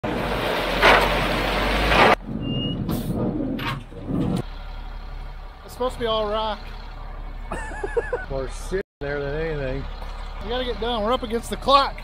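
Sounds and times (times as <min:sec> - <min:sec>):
truck engine rumble: 0:00.0 - 0:12.0.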